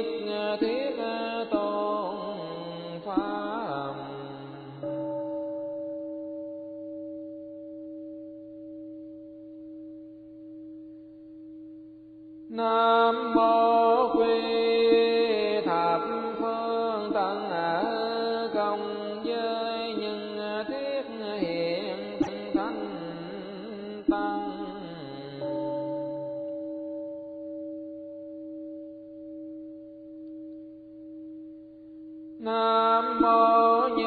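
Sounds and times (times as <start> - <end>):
steady held tone: 0.0 - 34.0
chanting with music: 10.5 - 27.5, 29.4 - 34.0.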